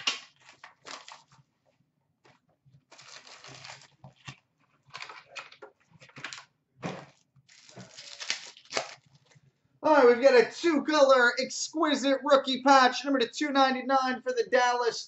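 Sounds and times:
foil wrapping crinkling and tearing: 0.0 - 1.4, 2.9 - 5.2, 6.3 - 9.4.

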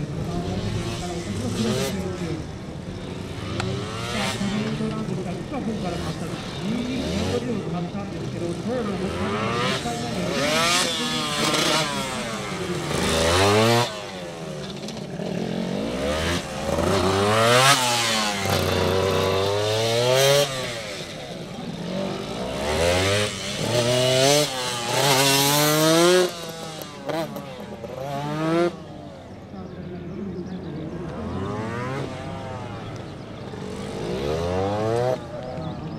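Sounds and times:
motorcycle engine revving hard: 0.0 - 29.1, 30.9 - 35.9.

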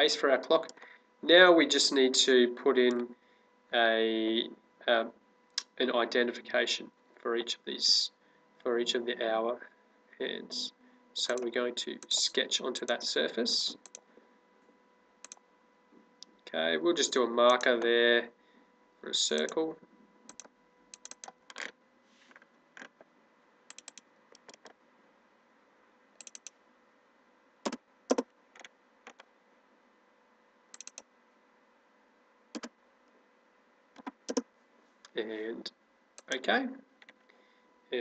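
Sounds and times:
computer mouse clicks: 13.8 - 14.0, 15.2 - 15.4, 20.3 - 21.7, 23.7 - 24.8, 26.2 - 26.6, 27.6 - 29.3, 30.7 - 31.1, 32.5 - 32.7, 34.0 - 35.2, 36.2 - 36.4.

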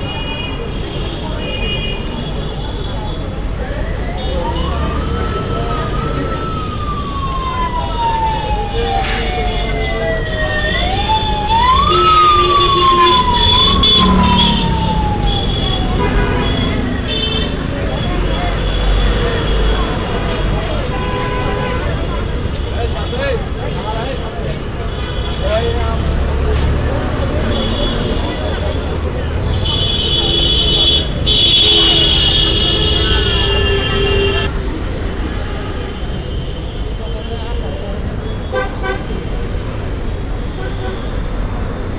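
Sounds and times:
low street rumble: 0.0 - 41.9
siren wailing: 3.6 - 17.1
vehicle horn steady tone: 29.6 - 34.5.

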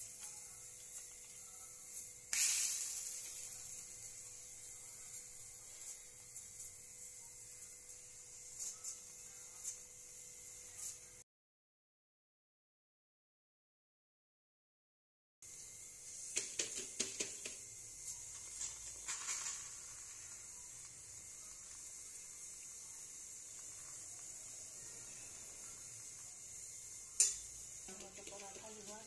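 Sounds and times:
flatbread hissing on hot pan: 0.0 - 11.2, 15.4 - 29.0.

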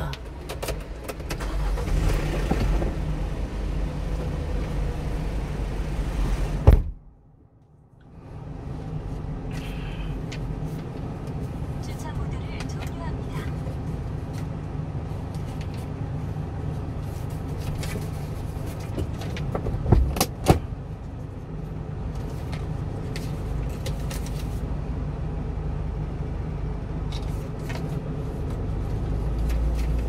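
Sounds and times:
low vehicle rumble: 0.0 - 30.0.

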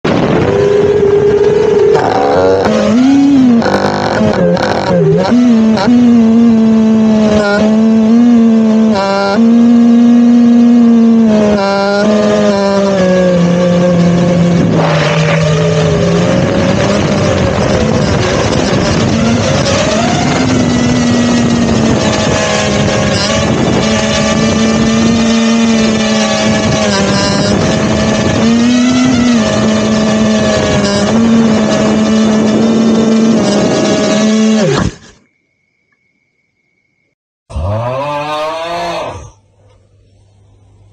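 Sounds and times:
quadcopter motors whining: 0.1 - 35.2, 37.5 - 40.4.

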